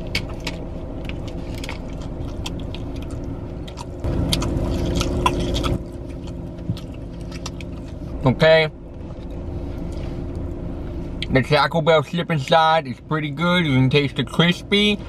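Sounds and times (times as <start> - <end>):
man chewing crunchy food: 0.0 - 8.2
steady low hum: 0.0 - 15.0
wet mouth clicks: 1.8 - 7.7.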